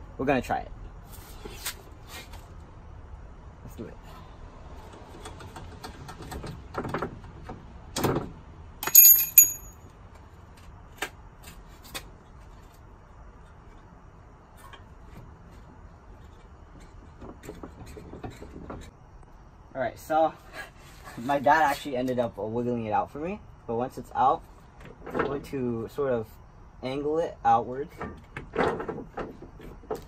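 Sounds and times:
ringing metallic clang: 8.8s - 9.7s.

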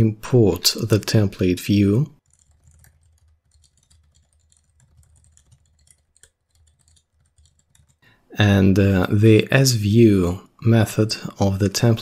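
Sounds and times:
typing on computer keyboard: 2.2s - 8.0s.

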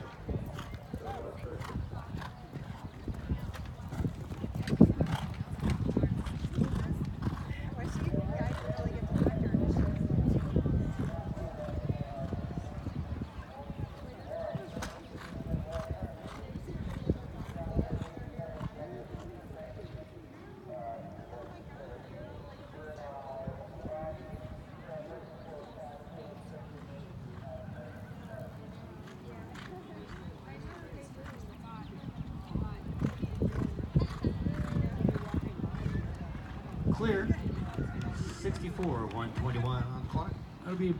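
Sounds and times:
people talking: 4.4s - 12.4s, 27.6s - 40.9s
horse hoofbeats on sand: 32.8s - 40.2s.

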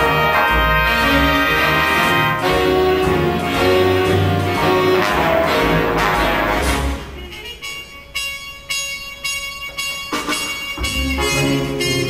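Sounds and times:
solo trumpet held notes: 5.0s - 12.0s.

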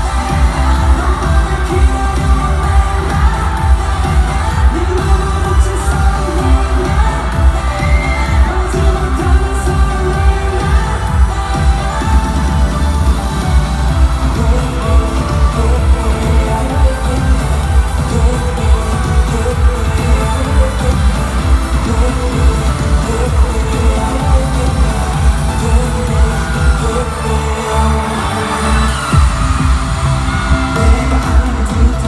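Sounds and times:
pop song over arena sound system: 0.0s - 32.0s.

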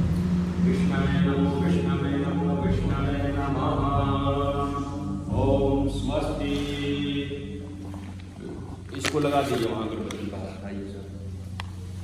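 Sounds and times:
person chanting: 0.0s - 10.6s
steady low hum: 0.0s - 12.0s.

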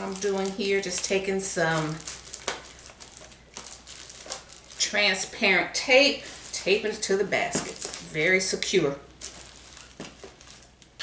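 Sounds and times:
tape rustling: 0.0s - 11.0s.

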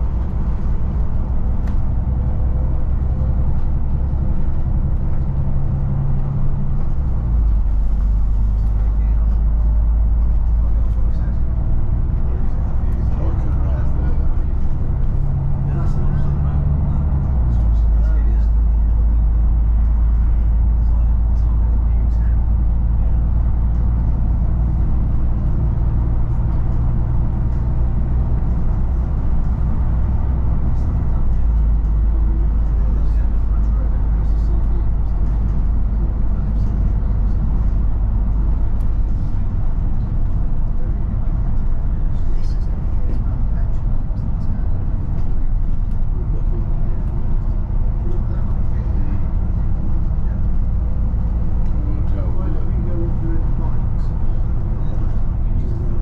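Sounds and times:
bus diesel engine drone: 0.0s - 56.0s.

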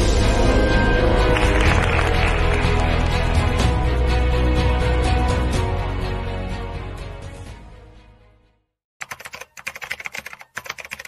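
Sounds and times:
keyboard typing clicks: 9.0s - 11.0s.

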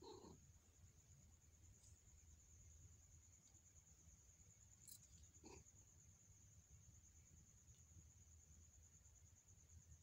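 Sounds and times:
kitten grunting softly: 0.0s - 0.5s, 5.2s - 5.9s
faint high whine: 0.0s - 10.0s.

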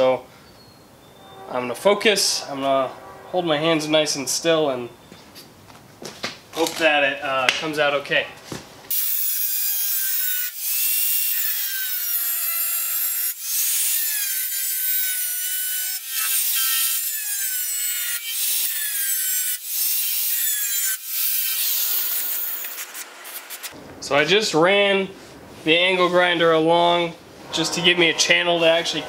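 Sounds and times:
angle grinder grinding steel: 8.9s - 23.7s.

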